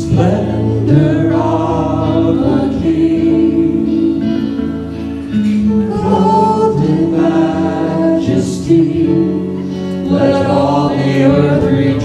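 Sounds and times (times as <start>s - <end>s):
electric guitar: 0.0s - 12.0s
group of voices singing: 0.0s - 12.0s.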